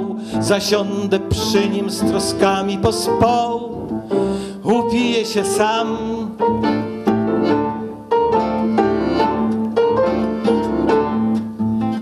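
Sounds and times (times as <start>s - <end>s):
small acoustic band instrumental: 0.0s - 12.0s.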